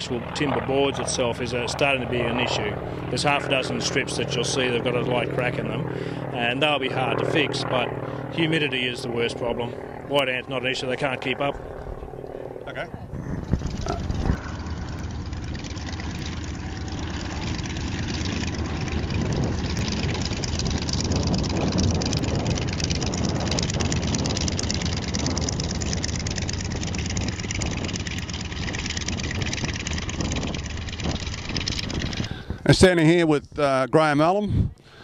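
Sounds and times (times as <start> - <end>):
propeller aircraft engine running: 0.0 - 35.0.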